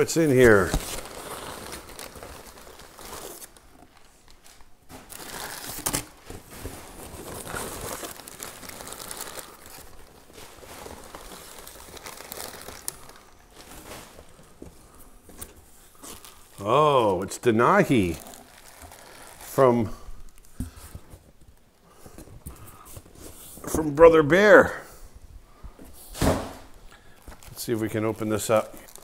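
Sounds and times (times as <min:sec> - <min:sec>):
crumpled paper rustling: 0:00.0 - 0:24.7, 0:26.2 - 0:29.0.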